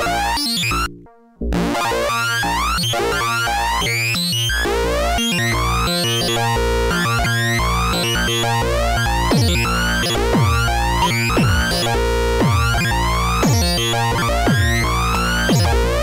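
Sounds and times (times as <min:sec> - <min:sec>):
buzzy rhythmic synth pattern: 0:00.0 - 0:16.0.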